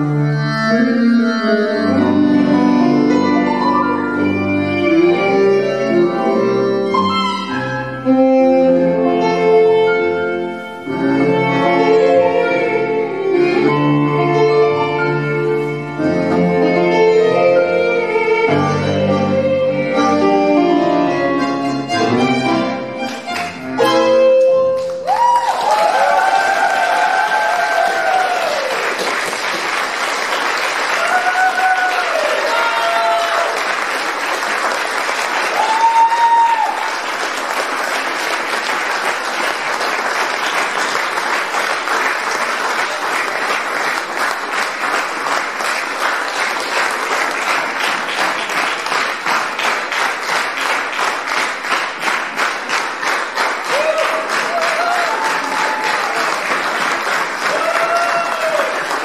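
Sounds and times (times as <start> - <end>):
audience applause: 24.8 - 59.0
shouted cheers: 25.0 - 29.0, 30.9 - 33.7, 35.5 - 37.0, 53.6 - 56.4, 57.4 - 59.0.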